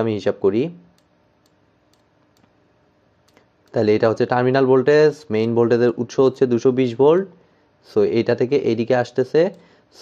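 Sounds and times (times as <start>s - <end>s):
man speaking: 3.7s - 10.0s.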